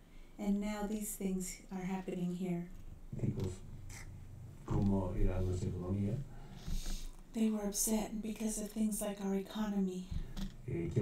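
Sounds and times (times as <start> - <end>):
low background noise: 0.0 - 11.0
man speaking: 3.1 - 6.3, 10.6 - 11.0.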